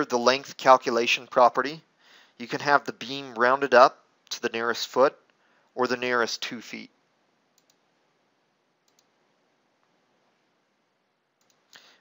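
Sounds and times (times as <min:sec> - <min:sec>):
computer mouse clicks: 0:07.6 - 0:07.8, 0:08.8 - 0:09.2, 0:11.4 - 0:11.9.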